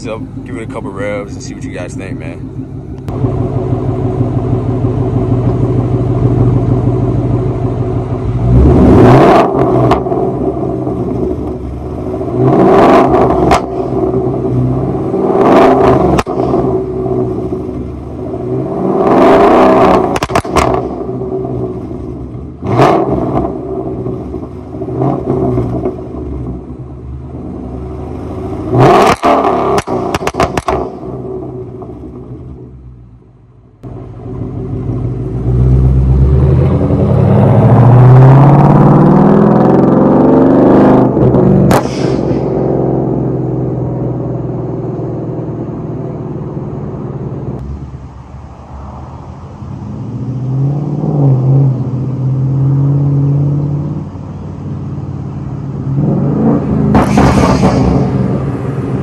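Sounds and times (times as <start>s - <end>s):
car engine idling and revving: 0.0s - 59.0s
exhaust crackling pops and bangs: 9.3s - 26.8s, 28.7s - 32.7s, 41.2s - 42.8s, 56.9s - 59.0s.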